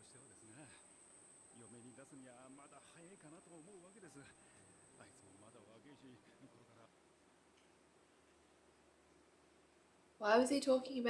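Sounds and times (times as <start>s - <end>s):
man speaking faintly: 0.0s - 0.9s, 1.6s - 7.0s
high-pitched whine: 0.0s - 6.9s.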